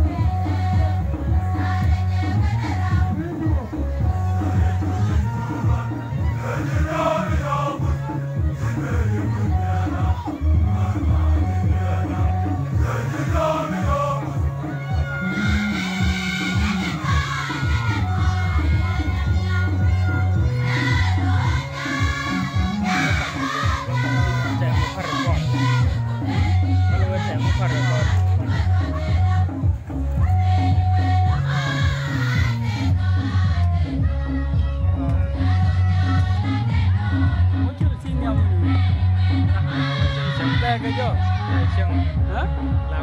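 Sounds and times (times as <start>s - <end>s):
choir singing gospel: 0.0s - 42.8s
steady rhythmic beat: 0.0s - 43.0s.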